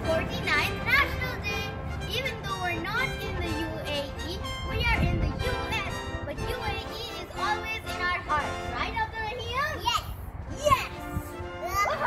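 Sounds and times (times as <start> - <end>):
background music: 0.0 - 9.3, 10.8 - 12.0
young children's voices: 0.0 - 12.0.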